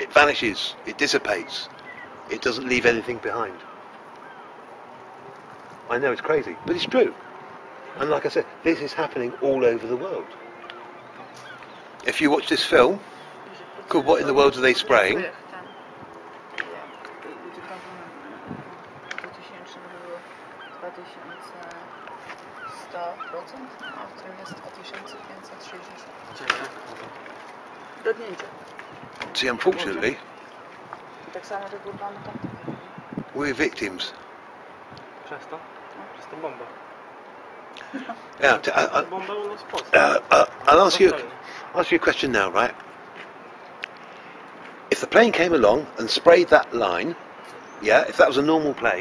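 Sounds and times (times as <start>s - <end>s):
man talking: 0.0s - 1.7s, 2.3s - 3.6s, 5.9s - 7.2s, 8.0s - 10.3s, 12.0s - 13.1s, 13.9s - 15.4s, 29.3s - 30.2s, 33.4s - 34.2s, 38.4s - 42.8s, 44.9s - 47.2s, 47.8s - 49.0s
birds chirping and calling: 0.0s - 49.0s
outdoor background hiss: 0.0s - 49.0s
steady background noise: 0.0s - 49.0s.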